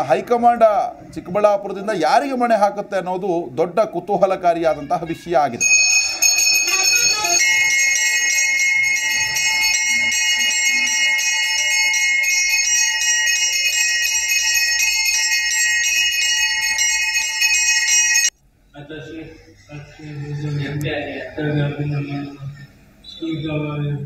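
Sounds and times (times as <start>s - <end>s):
brass hand bell ringing rapidly: 5.6s - 18.3s.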